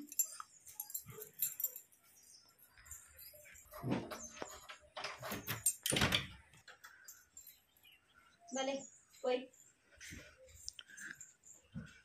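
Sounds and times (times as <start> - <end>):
keys jangling: 0.0 - 3.8, 5.4 - 6.2.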